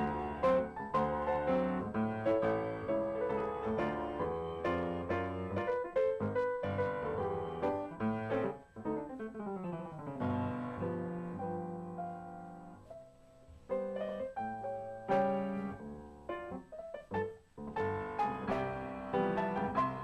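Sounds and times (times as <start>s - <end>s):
solo piano playing: 0.0s - 20.0s.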